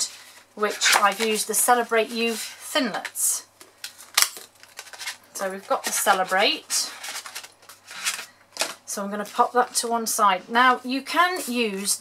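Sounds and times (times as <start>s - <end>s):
plastic packaging crinkling: 3.6s - 9.8s.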